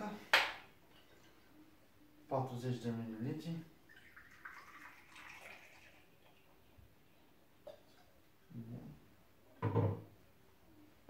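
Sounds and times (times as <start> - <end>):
liquid pouring into metal jigger: 3.9 - 6.5.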